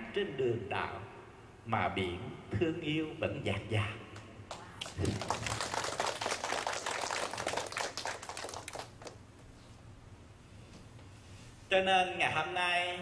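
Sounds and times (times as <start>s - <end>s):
audience applauding: 4.5s - 9.2s.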